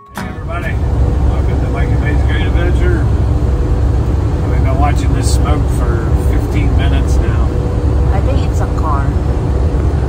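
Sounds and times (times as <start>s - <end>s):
road and engine rumble: 0.0s - 10.0s.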